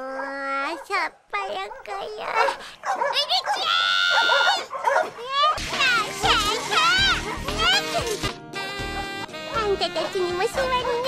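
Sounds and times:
high-pitched vocal cries and yelps: 0.0s - 8.2s.

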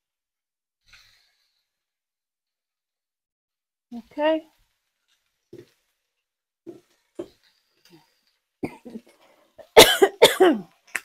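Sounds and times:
woman coughing: 8.6s - 10.7s.

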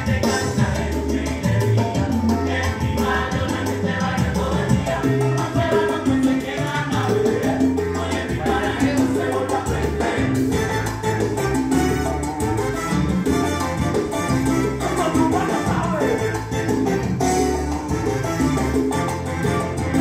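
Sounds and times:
salsa band playing: 0.0s - 20.0s.

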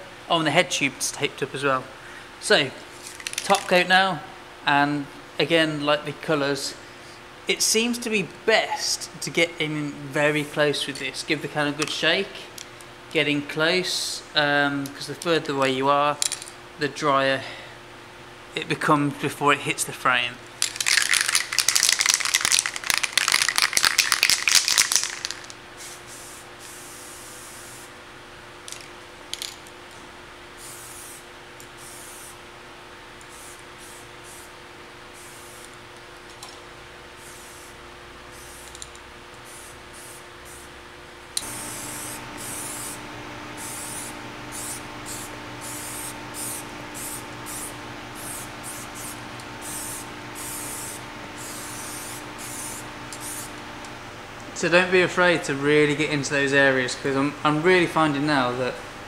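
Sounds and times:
aerosol paint can spraying: 20.6s - 27.9s, 30.6s - 31.2s, 31.8s - 32.4s, 33.2s - 34.5s, 35.2s - 35.7s, 37.2s - 38.8s, 39.4s - 40.6s, 41.4s - 43.0s, 43.6s - 53.6s.

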